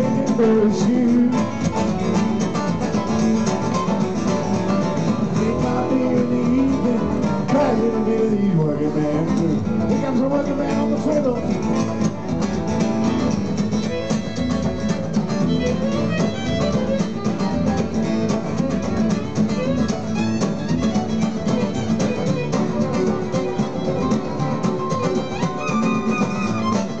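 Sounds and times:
acoustic guitars: 0.0 - 27.0
fiddle lead melody: 0.0 - 27.0.

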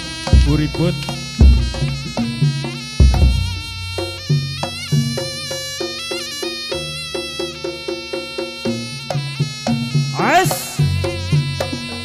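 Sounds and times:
buzzy reed trumpet: 0.0 - 12.0
drum strokes: 0.0 - 12.0.

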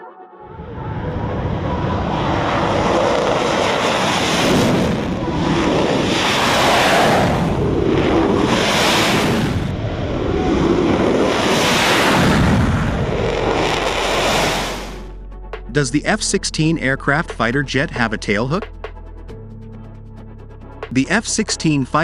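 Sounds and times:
jet engine roaring: 0.5 - 15.2.

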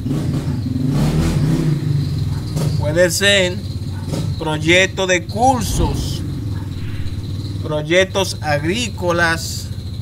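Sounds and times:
vehicle engine running: 0.0 - 8.0.

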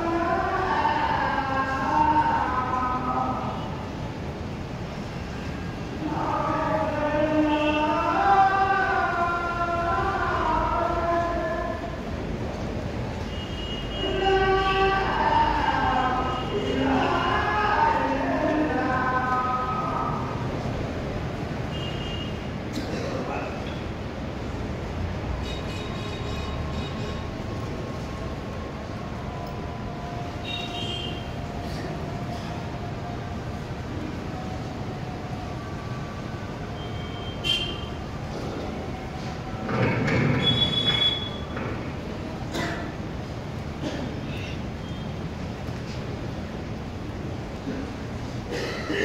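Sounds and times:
ceiling fans: 0.0 - 49.0
crowded hall rumbling: 0.0 - 49.0.

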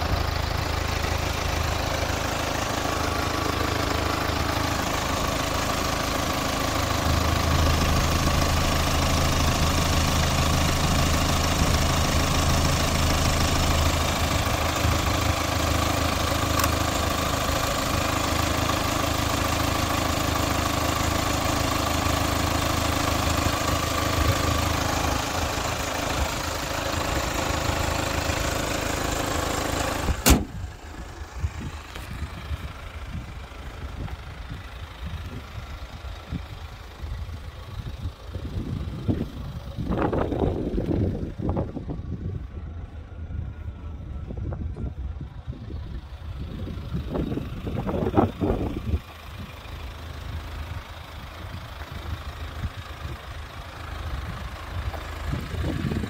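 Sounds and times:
diesel engine idling: 0.0 - 56.0
sharp knock: 30.2 - 30.6.

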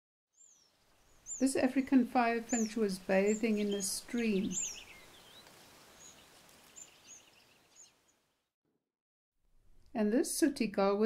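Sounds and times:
faint high bird chirps: 0.4 - 8.2
shallow stream flowing: 0.5 - 8.2.

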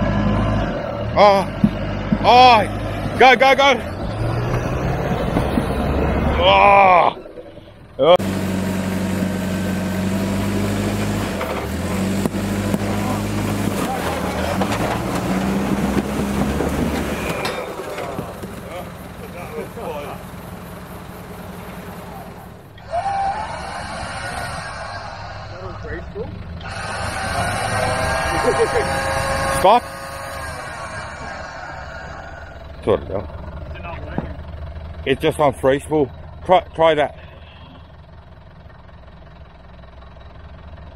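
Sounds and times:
voices calling out: 0.0 - 38.2
diesel engine under load: 0.0 - 40.9
tyres scrabbling on stone: 12.2 - 19.0.

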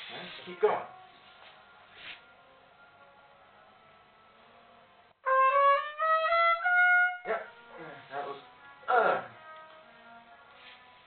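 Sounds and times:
trumpet playing upward phrase: 5.2 - 10.2.

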